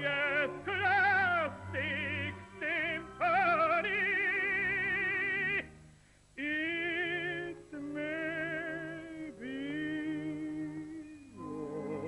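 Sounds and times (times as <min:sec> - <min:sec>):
operatic tenor singing: 0:00.0 - 0:05.8, 0:06.4 - 0:12.0
soft orchestral accompaniment: 0:00.0 - 0:12.0.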